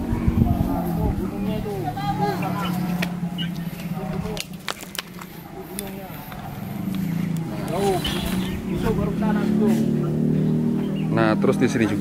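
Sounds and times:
indistinct voices: 0.0s - 12.0s
low engine-like hum: 0.0s - 12.0s.

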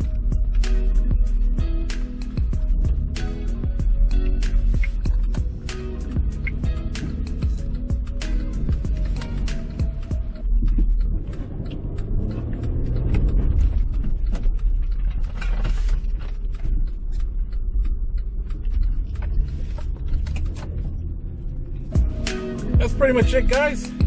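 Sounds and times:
music: 0.0s - 24.0s
tyre and road rumble: 0.0s - 24.0s.

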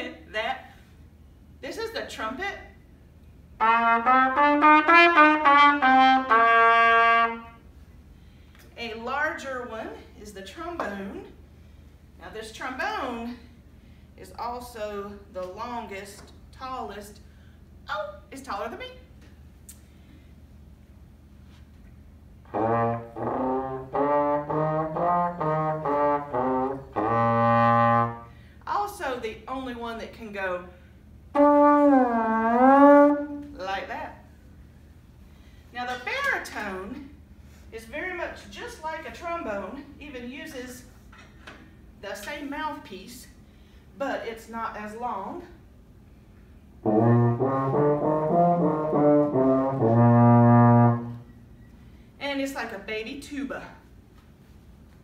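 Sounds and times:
trombone playing: 3.6s - 7.6s, 22.4s - 28.3s, 31.3s - 33.5s, 46.8s - 51.3s.

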